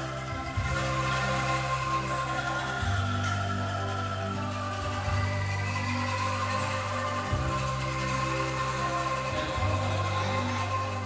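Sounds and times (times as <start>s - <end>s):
children playing bamboo angklung: 0.0s - 11.0s.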